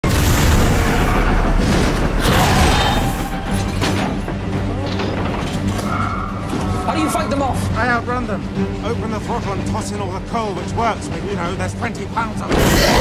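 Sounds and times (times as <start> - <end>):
dramatic music: 0.0 - 13.0.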